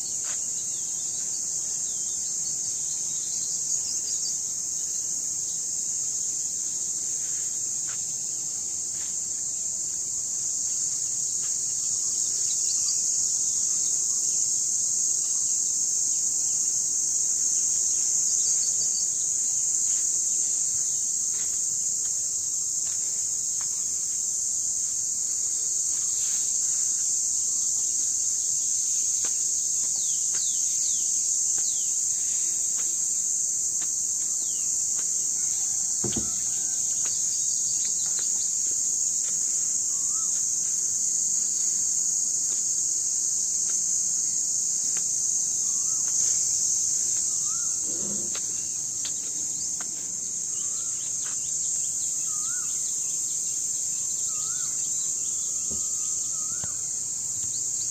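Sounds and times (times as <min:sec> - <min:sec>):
insects chorus: 0:00.0 - 0:57.9
low thump: 0:36.0 - 0:36.6.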